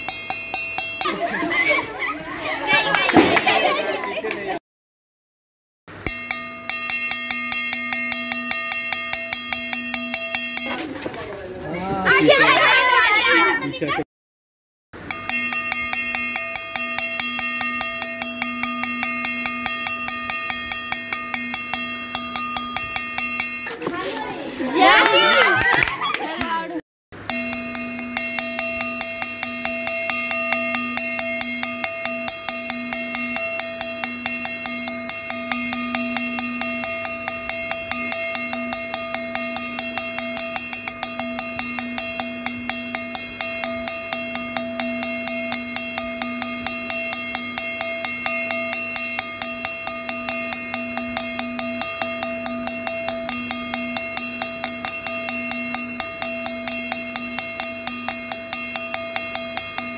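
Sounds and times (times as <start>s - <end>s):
cowbell-like clanging: 0.0s - 1.8s, 6.0s - 10.9s, 15.0s - 23.8s, 27.2s - 59.9s
sustained ringing tones: 0.0s - 2.1s, 6.0s - 13.3s, 15.0s - 25.4s, 27.2s - 59.9s.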